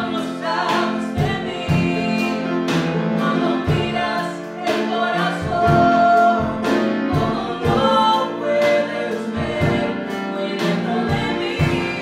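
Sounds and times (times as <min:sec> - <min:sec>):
instrumental accompaniment with beat: 0:00.0 - 0:12.0
woman singing gospel song: 0:00.0 - 0:12.0.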